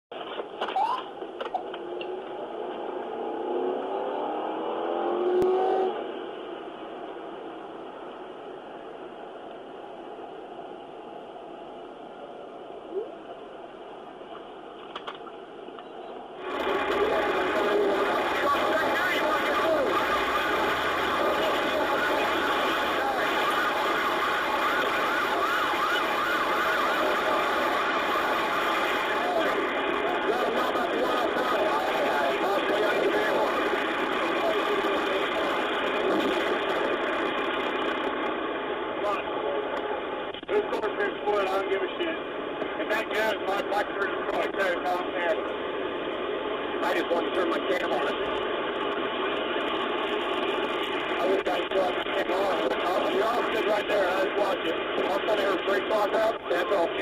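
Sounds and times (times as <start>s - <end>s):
car engine and road noise: 0.1s - 57.0s
voices over police radio: 15.8s - 37.9s, 38.9s - 49.7s, 50.4s - 57.0s.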